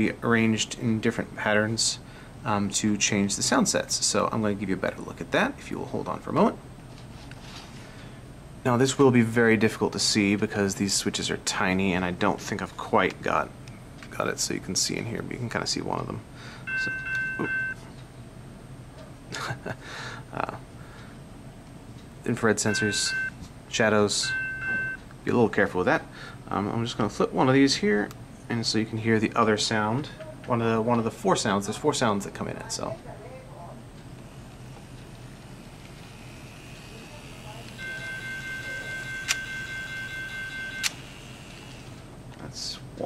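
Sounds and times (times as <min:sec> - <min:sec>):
low steady hum: 0:00.0 - 0:43.0
electronic crossing bell tone: 0:16.7 - 0:17.8, 0:37.8 - 0:40.9.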